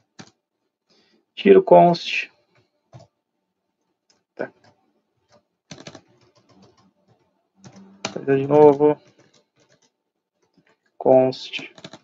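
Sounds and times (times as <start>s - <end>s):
computer keyboard typing: 0.0s - 0.4s, 2.5s - 3.1s, 4.1s - 12.0s.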